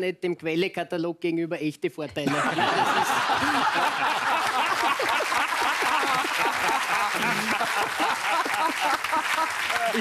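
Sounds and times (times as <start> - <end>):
audience applauding: 2.8 - 10.0.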